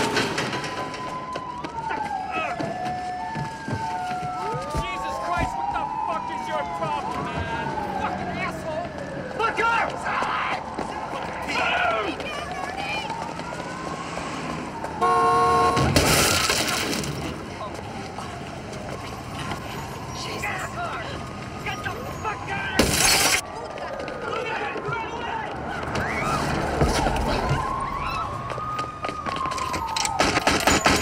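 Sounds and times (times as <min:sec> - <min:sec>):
car horn blaring: 0:15.0 - 0:16.0
loud car crash: 0:15.6 - 0:17.3, 0:22.8 - 0:23.4.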